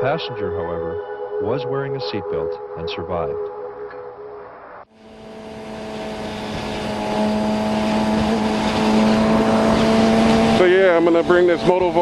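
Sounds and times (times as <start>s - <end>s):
faint music: 0.0s - 3.6s
wind and road noise: 4.3s - 12.0s
motorcycle engine cruising: 4.9s - 12.0s.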